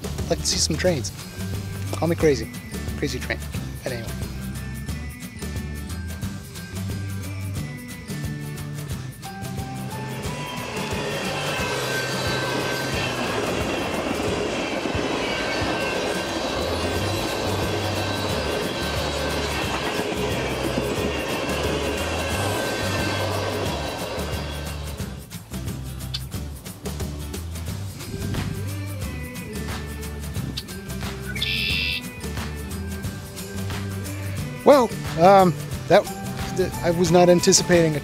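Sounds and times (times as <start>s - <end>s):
background music with bass: 0.0s - 12.5s, 16.6s - 38.0s
train wheels on rails: 9.2s - 25.8s.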